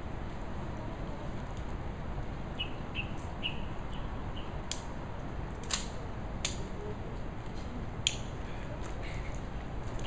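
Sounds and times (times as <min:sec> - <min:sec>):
small bird chirping: 0:02.6 - 0:04.6.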